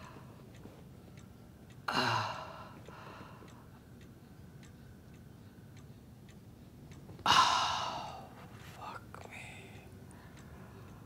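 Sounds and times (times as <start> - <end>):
clock ticking: 0.0 - 7.1.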